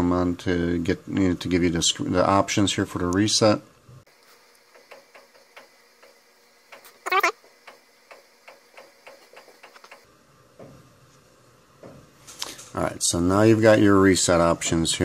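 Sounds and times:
sped-up speech: 0:07.1 - 0:07.3.

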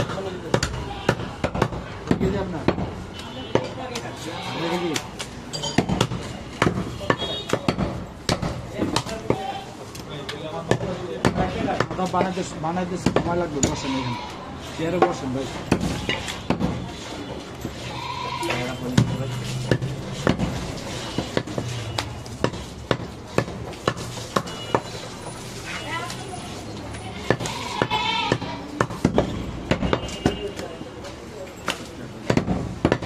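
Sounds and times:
cleaver chopping on wooden block: 0:13.0 - 0:13.8, 0:19.0 - 0:24.9, 0:32.3 - 0:33.0
goat bleating: 0:13.8 - 0:14.4, 0:17.8 - 0:18.6, 0:27.3 - 0:28.6.

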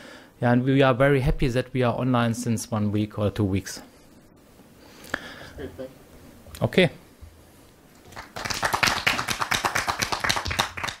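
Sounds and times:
audience applauding: 0:08.0 - 0:11.0.

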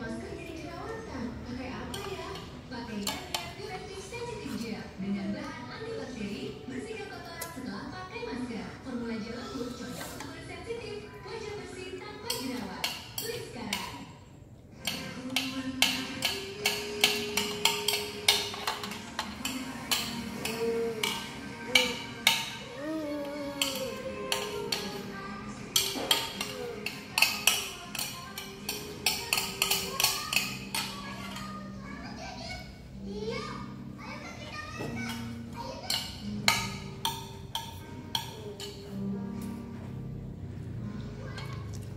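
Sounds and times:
music with voice: 0:14.7 - 0:41.9.

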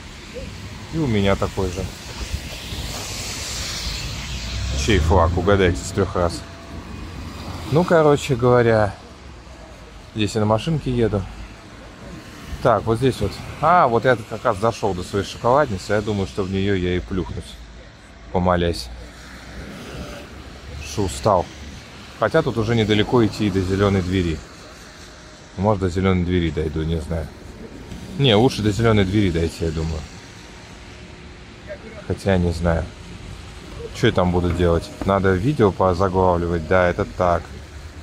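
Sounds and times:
car engine rumble: 0:00.0 - 0:18.0, 0:20.2 - 0:38.0
tyres hissing on slush: 0:00.0 - 0:38.0.

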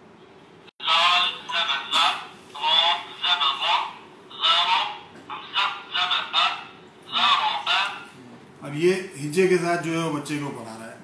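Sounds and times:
recorded voice from small speaker: 0:00.8 - 0:09.0.

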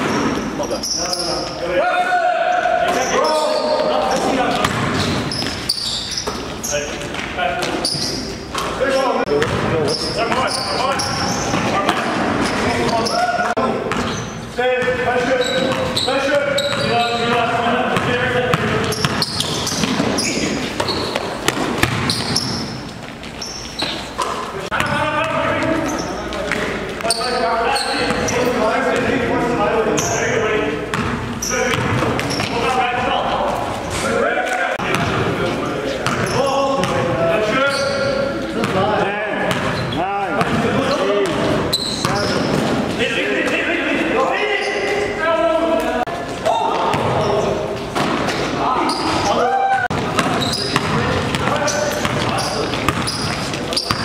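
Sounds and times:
players' voices echoing: 0:00.0 - 0:54.0
basketball bouncing on hardwood floor: 0:04.6 - 0:05.6, 0:09.3 - 0:09.7, 0:18.0 - 0:20.2, 0:20.8 - 0:22.5, 0:49.9 - 0:54.0.

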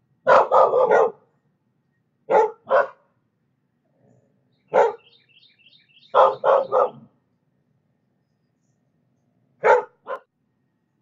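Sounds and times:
dog barking: 0:00.2 - 0:01.3, 0:02.3 - 0:03.1, 0:04.7 - 0:05.1, 0:06.1 - 0:07.1, 0:09.6 - 0:10.3.

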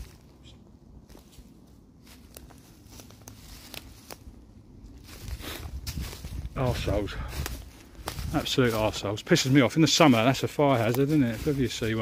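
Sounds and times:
footsteps through fallen leaves: 0:00.0 - 0:00.4, 0:01.0 - 0:12.0.

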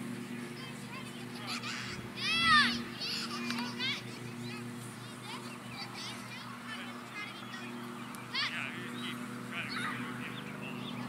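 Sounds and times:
children's voices: 0:00.5 - 0:11.0
child's high-pitched yell: 0:01.8 - 0:03.2.

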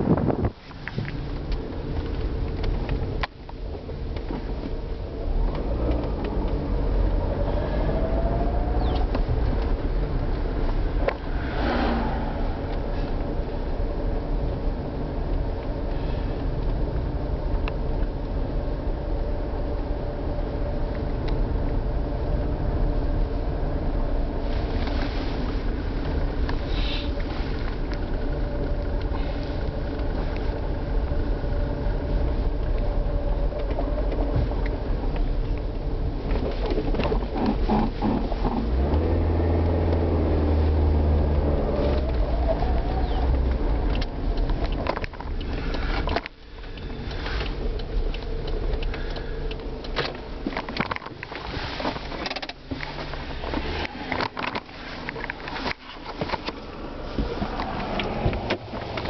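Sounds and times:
car rumble inside cabin: 0:00.0 - 0:59.0.

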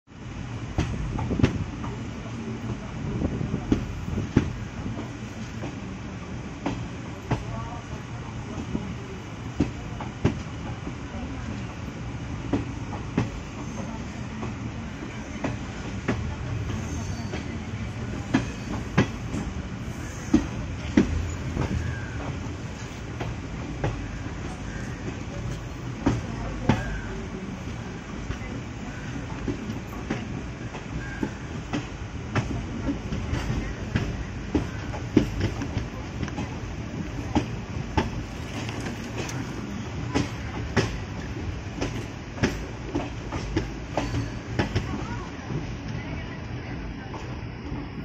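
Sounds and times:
train coach low rumble: 0:00.1 - 0:48.0.

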